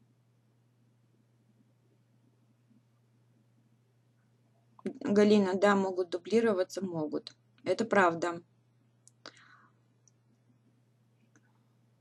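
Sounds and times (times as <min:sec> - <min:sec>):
faint steady hum: 0:00.0 - 0:12.0
soft breathy sound: 0:09.2 - 0:09.9.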